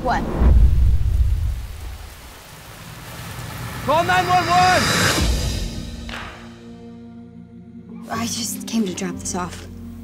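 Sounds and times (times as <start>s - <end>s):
rain falling: 0.0s - 6.3s.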